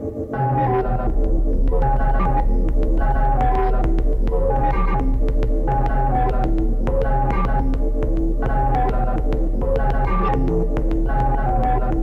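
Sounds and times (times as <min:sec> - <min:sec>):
deep bass drone: 0:00.4 - 0:12.0
short synth notes sequence: 0:00.4 - 0:12.0.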